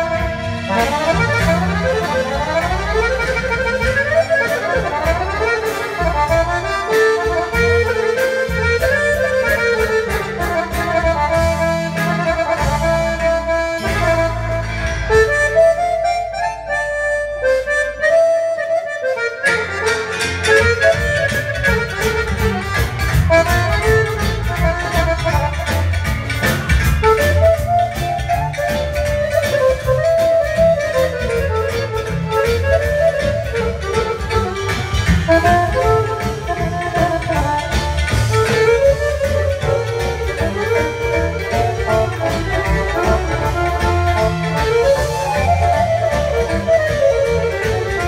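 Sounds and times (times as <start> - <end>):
accordions playing fast melodies: 0.0 - 48.0
double bass line: 0.0 - 48.0.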